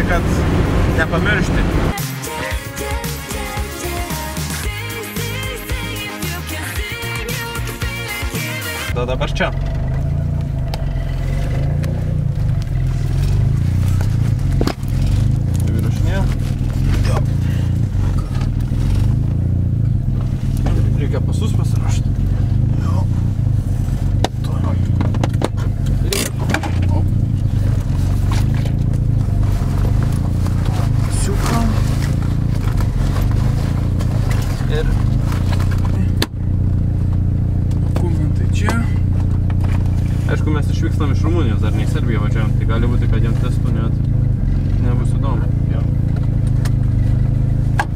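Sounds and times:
car engine drone: 0:00.0 - 0:47.9.

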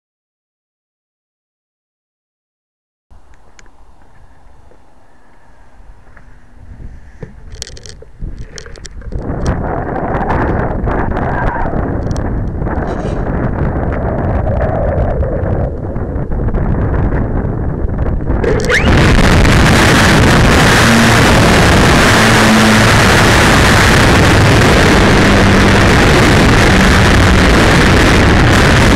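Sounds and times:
wind buffeting microphone: 0:03.1 - 0:28.9.

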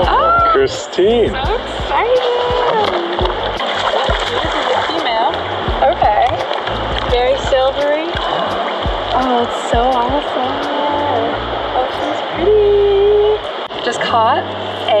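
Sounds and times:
excited voices: 0:00.0 - 0:05.2
river water splashing: 0:00.0 - 0:15.0.

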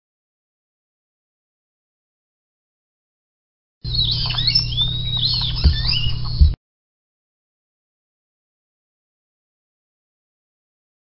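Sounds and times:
high-pitched animal squeaks: 0:03.9 - 0:06.6
steady low hum: 0:03.9 - 0:06.6
thumps: 0:05.6 - 0:06.6.

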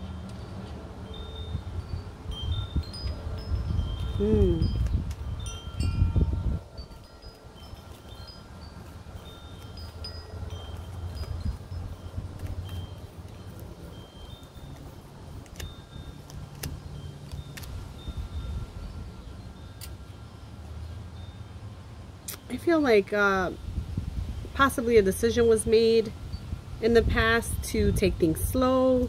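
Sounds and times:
low steady rumble: 0:00.0 - 0:29.0
wind chimes tinkling: 0:00.0 - 0:29.0
cards being shuffled: 0:08.8 - 0:17.8.

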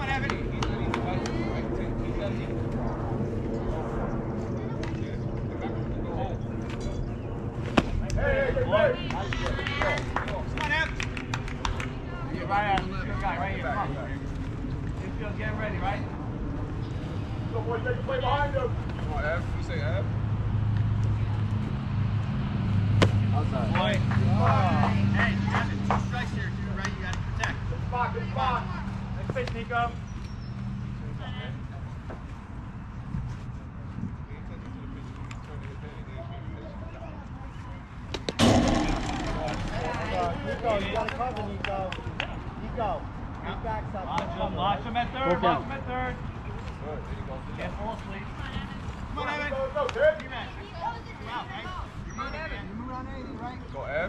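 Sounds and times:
bat hitting ball: 0:23.0 - 0:23.2, 0:38.1 - 0:40.0.

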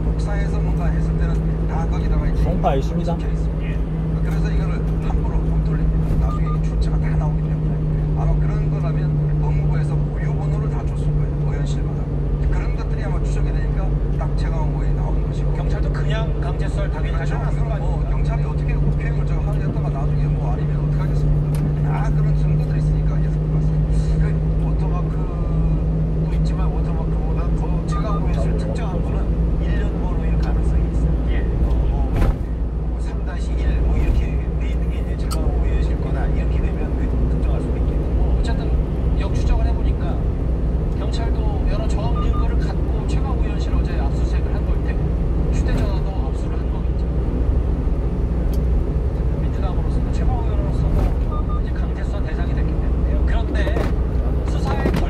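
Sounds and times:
faint radio talk: 0:00.0 - 0:47.3
truck engine and road rumble: 0:00.0 - 0:55.0.

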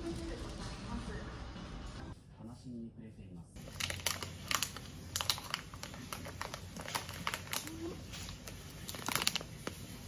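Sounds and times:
plastic candy bag crinkling: 0:03.6 - 0:10.0.

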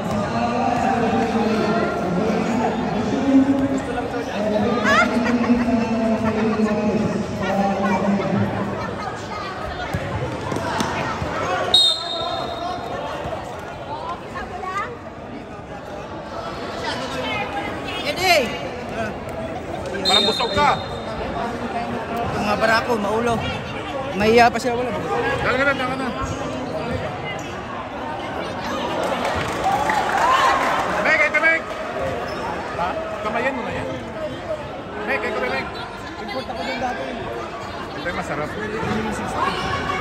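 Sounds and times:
people chattering: 0:00.0 - 0:40.0
players and spectators voices: 0:00.0 - 0:40.0
shrill whistle blast: 0:11.8 - 0:12.6.

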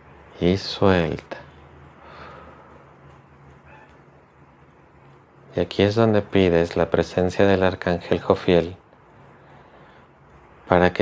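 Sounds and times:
faint low hum: 0:00.0 - 0:11.0
person breathing out: 0:02.0 - 0:02.8.

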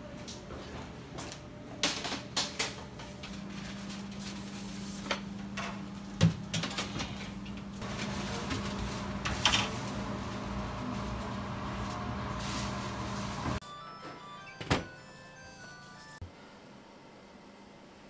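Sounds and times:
mechanical hum of equipment: 0:00.0 - 0:15.0, 0:15.6 - 0:18.0.

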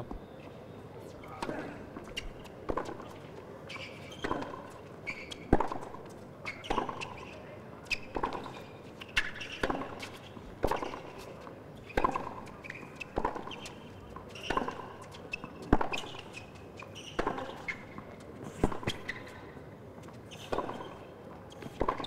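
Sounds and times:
shoes squeaking on court: 0:00.0 - 0:22.0
tennis ball bouncing: 0:01.4 - 0:03.2, 0:04.1 - 0:07.2, 0:07.9 - 0:11.2, 0:11.9 - 0:16.4, 0:20.4 - 0:21.0, 0:21.6 - 0:22.0.

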